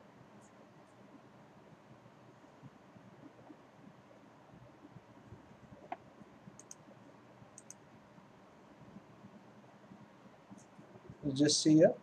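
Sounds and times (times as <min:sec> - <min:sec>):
room hiss: 0:00.0 - 0:12.0
computer mouse clicks: 0:06.6 - 0:06.8, 0:07.6 - 0:07.8.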